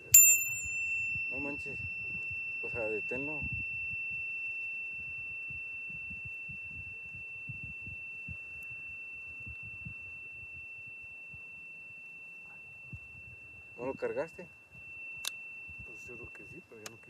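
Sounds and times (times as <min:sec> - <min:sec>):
high-pitched steady tone: 0:00.0 - 0:17.0.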